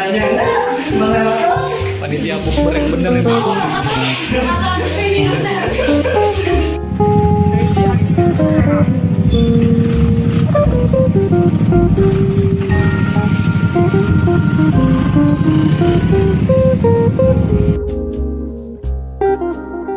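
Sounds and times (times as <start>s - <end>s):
melody over dense low beat: 5.6s - 19.9s.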